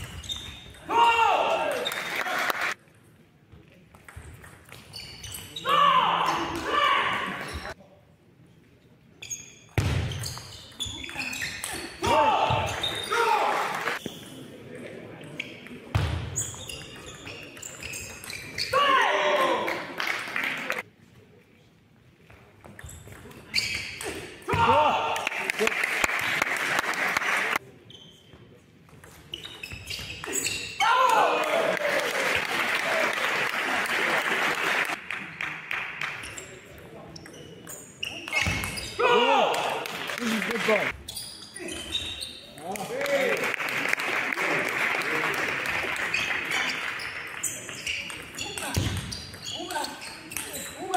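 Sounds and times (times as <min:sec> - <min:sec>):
applause and cheering: 0:01.7 - 0:02.8, 0:25.2 - 0:27.6, 0:31.2 - 0:35.9, 0:42.8 - 0:46.5.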